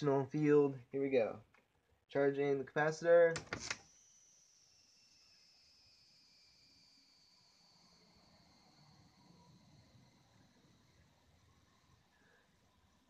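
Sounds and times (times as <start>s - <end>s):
high-pitched electronic whine: 3.8s - 11.2s.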